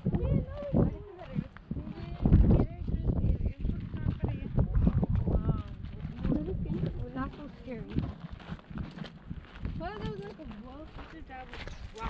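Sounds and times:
footsteps on rocky dirt trail: 0.0s - 12.0s.

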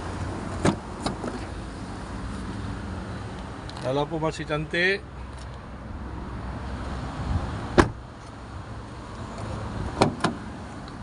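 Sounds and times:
car door shutting: 0.5s - 1.5s, 7.7s - 8.0s, 10.0s - 10.4s.

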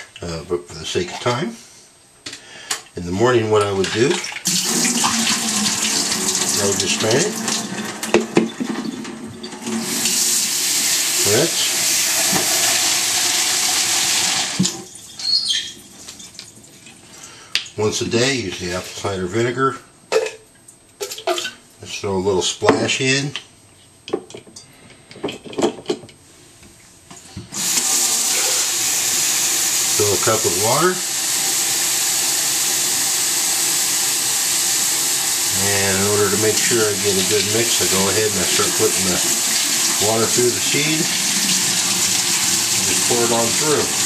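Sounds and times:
tap water running into a cup: 3.7s - 17.0s, 27.5s - 44.0s.

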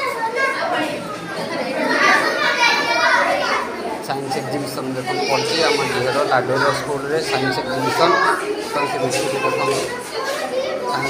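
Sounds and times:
children talking and calling: 0.0s - 11.0s.

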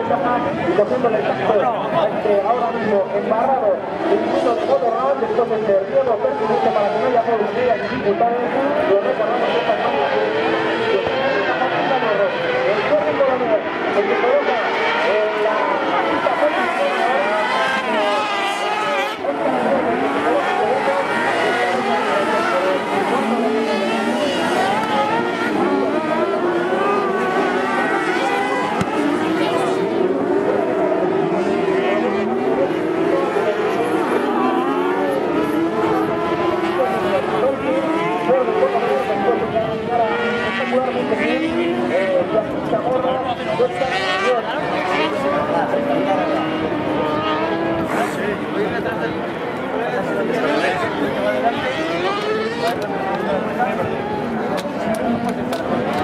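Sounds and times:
buggy engines revving: 0.0s - 56.0s.

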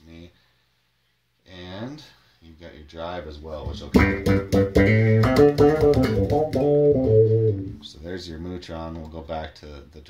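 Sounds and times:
envelope-filtered electric bass notes: 3.8s - 7.8s.

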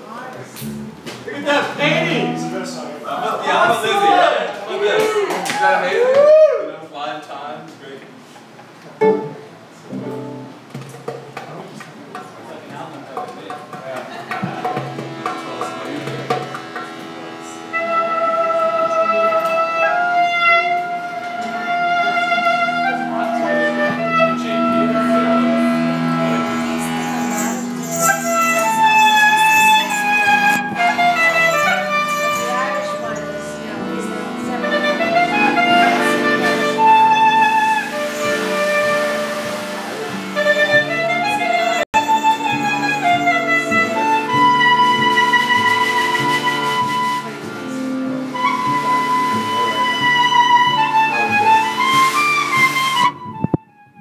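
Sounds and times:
upright bass: 0.0s - 4.4s, 9.0s - 11.3s, 21.6s - 45.8s
klezmer band playing: 0.0s - 6.1s, 9.0s - 11.5s, 13.1s - 54.0s
clarinet melody: 1.7s - 4.3s, 14.4s - 54.0s.

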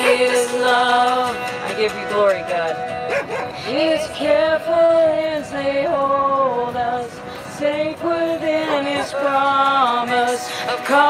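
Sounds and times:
singing over music from speaker: 0.0s - 11.0s
dog barking: 3.1s - 3.6s.

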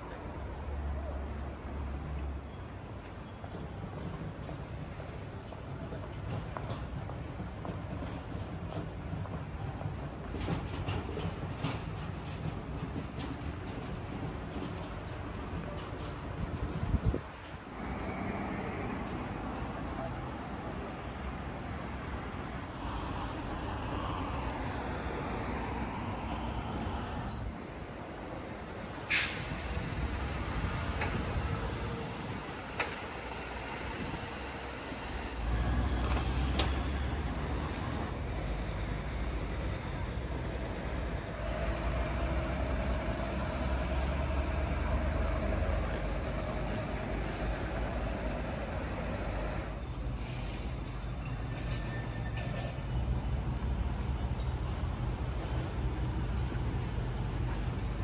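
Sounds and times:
street traffic: 0.0s - 58.0s.

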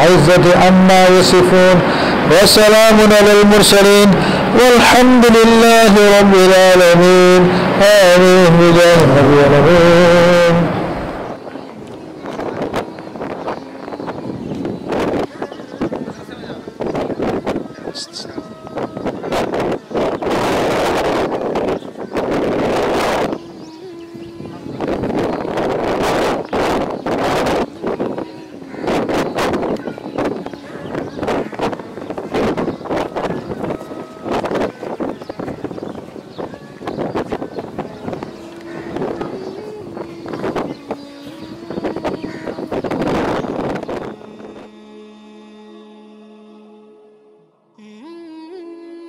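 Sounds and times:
wind buffeting microphone: 0.0s - 45.6s
held chanting note: 0.0s - 49.0s.

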